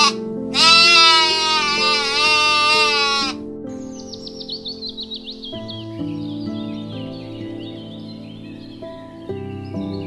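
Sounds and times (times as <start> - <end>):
sheep bleating: 0.0 - 3.4
soft background music: 0.0 - 10.0
bird chirping: 1.0 - 10.0.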